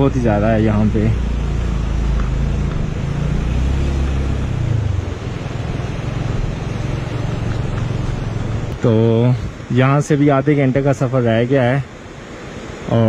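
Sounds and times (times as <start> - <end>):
wind and road noise: 0.0 - 13.0.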